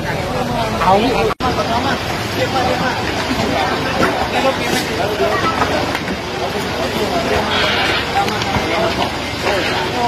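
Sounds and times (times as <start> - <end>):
crowd talking: 0.0 - 10.0
idling vehicles rumble: 0.0 - 10.0.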